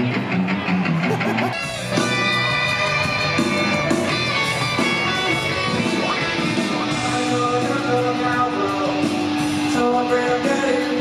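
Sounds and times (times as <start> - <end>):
electric guitar chords: 0.0 - 11.0
rock band playing live: 0.0 - 11.0.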